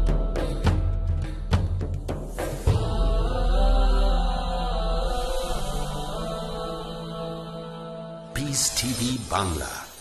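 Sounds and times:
drone-like chanting voices: 0:02.4 - 0:10.0.

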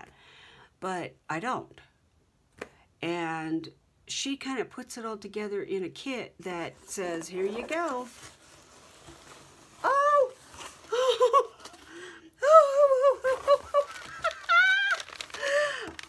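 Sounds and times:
woman's delighted vocal sounds: 0:12.4 - 0:16.0.

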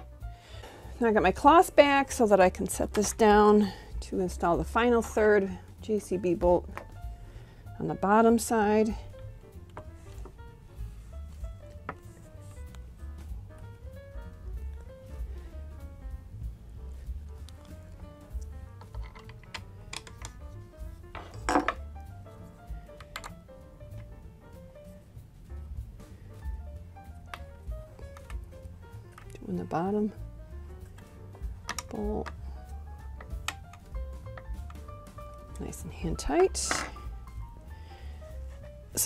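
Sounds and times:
quiet background music: 0:00.0 - 0:39.0
tools handled on table: 0:18.8 - 0:20.4, 0:21.1 - 0:21.8, 0:36.4 - 0:37.1.

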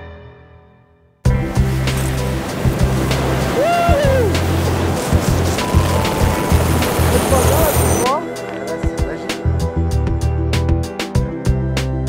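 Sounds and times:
music: 0:00.0 - 0:12.0
helicopter hovering: 0:01.5 - 0:09.3.

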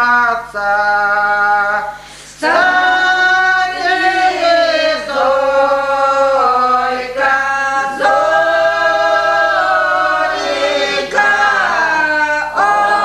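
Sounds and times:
women singing unaccompanied: 0:02.4 - 0:13.0.

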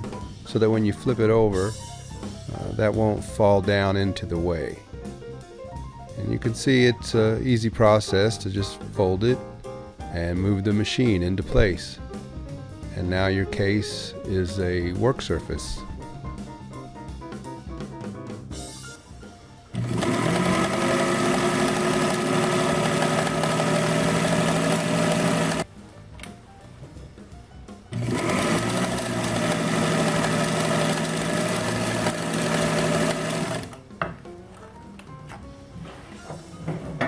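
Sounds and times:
background music: 0:00.0 - 0:37.0
sewing machine stitching: 0:19.8 - 0:25.6, 0:27.9 - 0:33.8.

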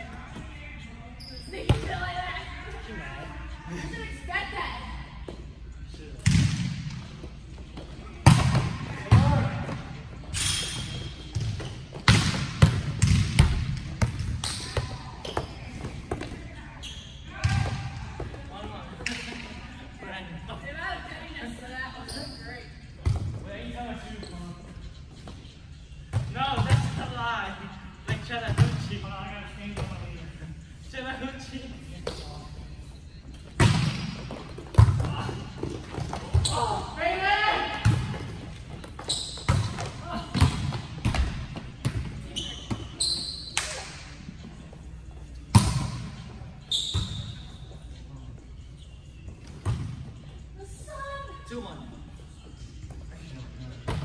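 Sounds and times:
volleyballs smacking and bouncing: 0:06.2 - 0:16.5, 0:33.4 - 0:36.8, 0:37.8 - 0:42.9, 0:45.4 - 0:46.2.

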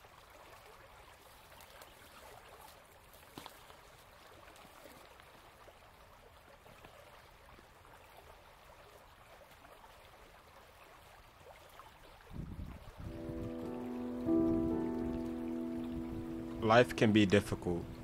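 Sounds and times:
flowing creek: 0:00.0 - 0:18.0
background music: 0:13.1 - 0:18.0.

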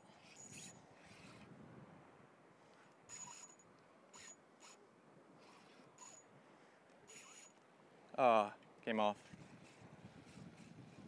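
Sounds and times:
fishing reel drag ticking: 0:04.2 - 0:04.8, 0:05.5 - 0:06.2, 0:07.1 - 0:07.5.

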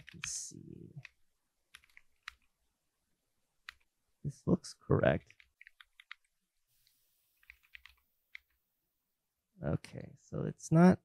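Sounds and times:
computer keyboard keystrokes: 0:01.0 - 0:02.5, 0:05.2 - 0:06.3, 0:07.4 - 0:08.5.

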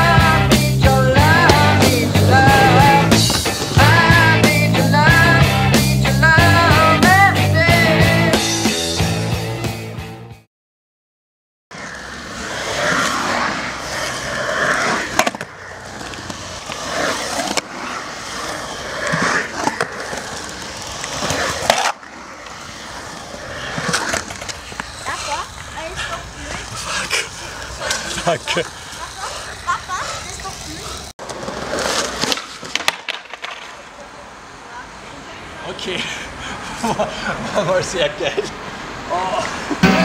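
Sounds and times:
skateboard wheels rolling on concrete: 0:00.0 - 0:10.2, 0:11.7 - 0:40.0
skateboard clacking on surface: 0:01.4 - 0:03.8, 0:15.0 - 0:17.7, 0:19.0 - 0:22.6, 0:31.2 - 0:34.1.

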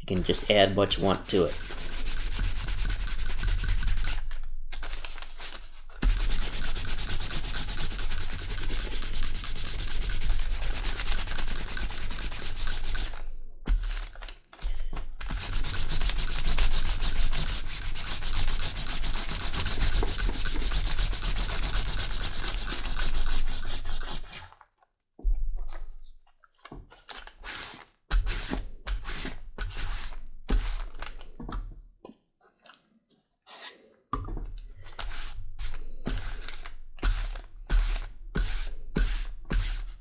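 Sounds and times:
cloth block scrubbing leather: 0:00.2 - 0:04.2, 0:04.8 - 0:13.2, 0:15.3 - 0:24.6, 0:35.0 - 0:40.0.

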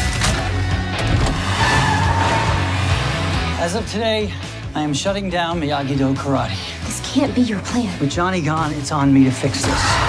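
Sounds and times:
trailer music: 0:00.0 - 0:10.0.

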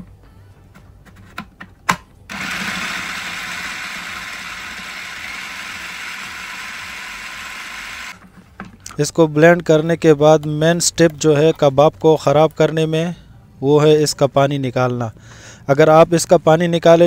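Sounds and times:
food processor motor running: 0:02.3 - 0:08.2.

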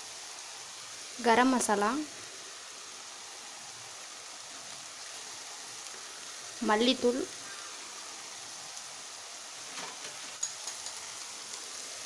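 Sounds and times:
meat sizzling in a pan: 0:00.0 - 0:12.0.

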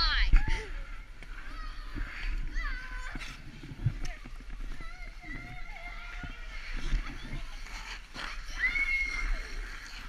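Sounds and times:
ice skates scraping: 0:00.4 - 0:10.0.

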